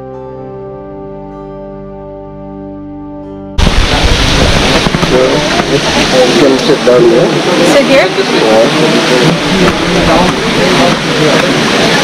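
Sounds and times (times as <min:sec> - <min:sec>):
loud rushing noise: 0:03.6 - 0:12.0.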